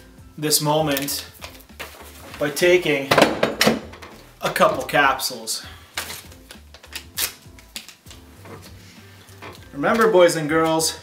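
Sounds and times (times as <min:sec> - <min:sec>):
faint background music with bass: 0:00.0 - 0:11.0
capsule packaging clicks and rustles: 0:00.9 - 0:02.7, 0:05.9 - 0:08.8.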